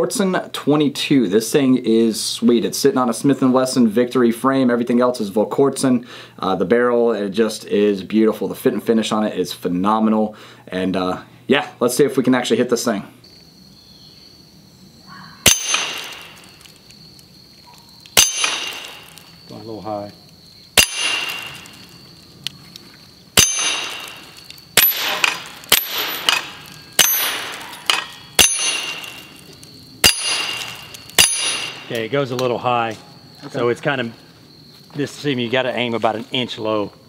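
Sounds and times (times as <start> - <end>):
pistol shots: 15.4 - 16.5, 18.2 - 19.2, 20.8 - 21.9, 23.4 - 29.4, 30.0 - 31.9
steel target ringing: 15.4 - 16.6, 18.2 - 19.2, 20.8 - 21.9, 23.4 - 31.9.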